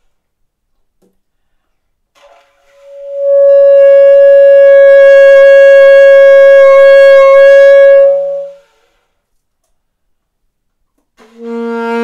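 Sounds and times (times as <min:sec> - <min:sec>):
alto saxophone long note: 0:03.0 - 0:08.6, 0:11.2 - 0:12.0.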